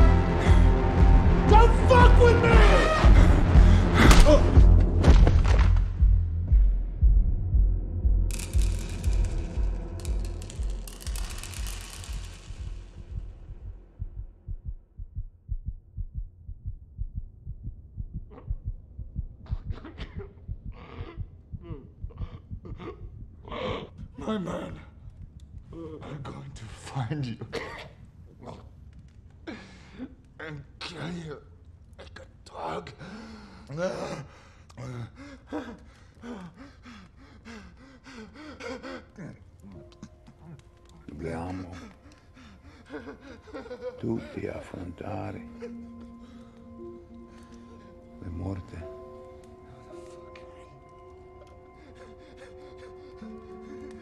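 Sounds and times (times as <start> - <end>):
heartbeat thumps: 3.0 - 8.8, 13.0 - 24.2
low boom: 3.2 - 10.8
pills clattering on wooden floor: 8.3 - 12.9.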